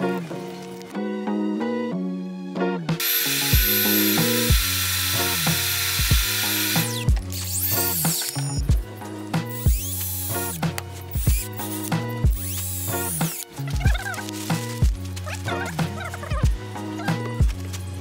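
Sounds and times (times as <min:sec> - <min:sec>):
music with steady beat: 0:02.9 - 0:18.0
table saw cutting board: 0:03.0 - 0:08.4
drill boring into wood: 0:03.0 - 0:08.6, 0:09.5 - 0:13.5.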